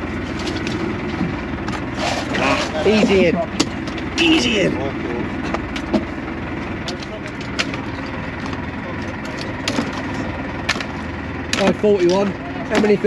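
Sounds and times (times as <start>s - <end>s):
boat engine idling: 0.0s - 13.0s.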